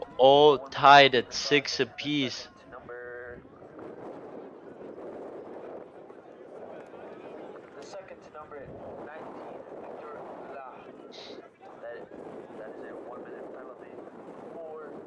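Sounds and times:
background murmur: 0.0s - 3.7s, 6.3s - 11.9s.

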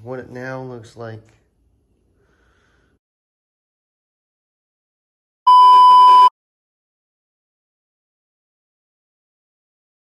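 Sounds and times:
loud electronic beep: 5.5s - 6.3s.

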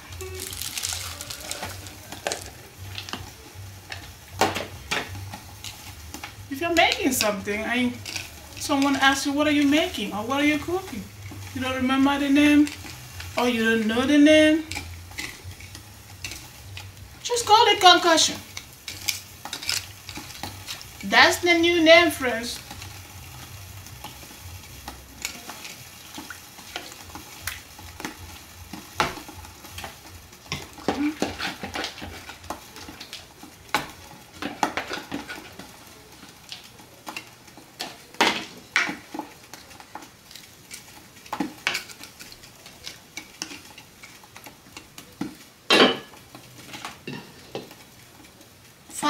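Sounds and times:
faint sizzle: 0.0s - 49.0s
spatula scraping and knocking pot: 24.8s - 33.1s, 33.7s - 35.8s.

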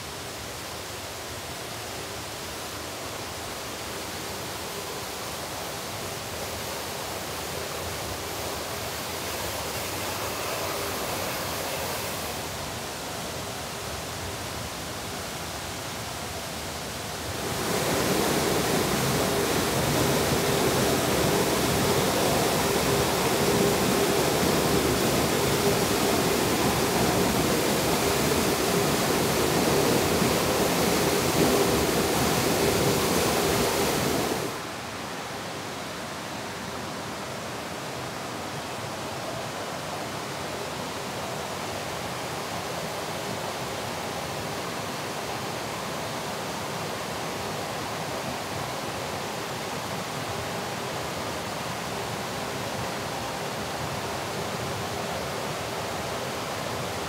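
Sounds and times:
mountain river rushing: 0.0s - 57.0s
waterfall rushing close up: 0.0s - 57.0s.

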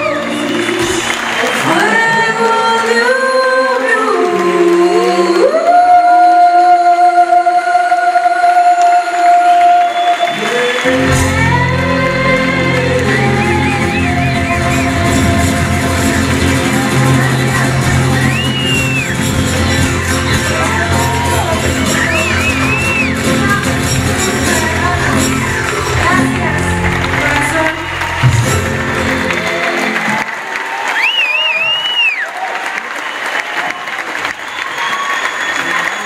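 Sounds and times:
woman singing blues: 1.6s - 9.8s, 10.8s - 19.8s, 20.5s - 28.1s
band with bass: 10.7s - 30.3s.

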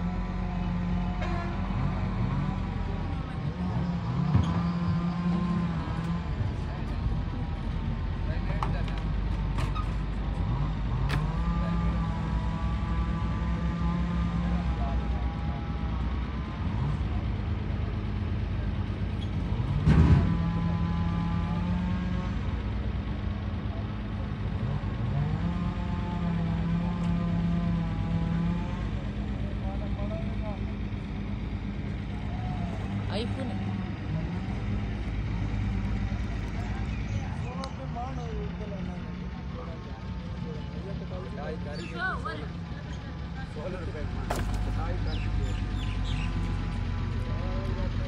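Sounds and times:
diesel truck engine revving: 0.0s - 48.0s.

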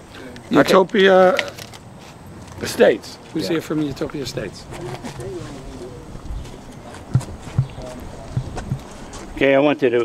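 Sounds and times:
faint crowd voices: 3.3s - 9.4s
microphone handling thumps: 4.6s - 9.4s.

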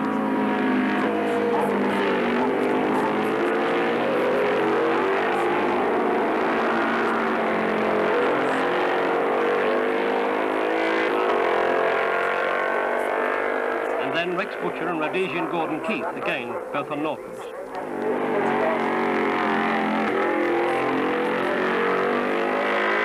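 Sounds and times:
racing motorcycle engines: 0.0s - 23.0s.

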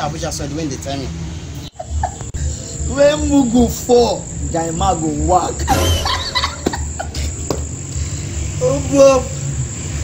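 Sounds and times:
crickets chirring: 0.2s - 10.0s.

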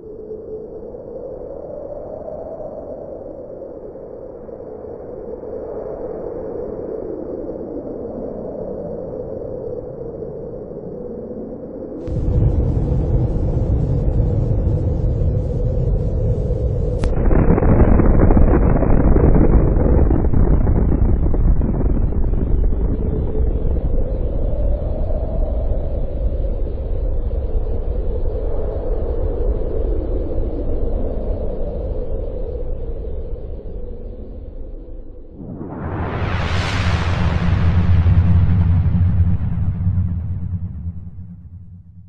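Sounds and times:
deep explosion rumble: 12.0s - 24.8s, 35.3s - 42.0s.

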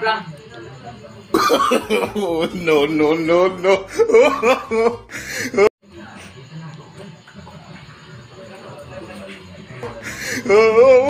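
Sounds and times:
man coughing harshly: 1.4s - 2.3s.

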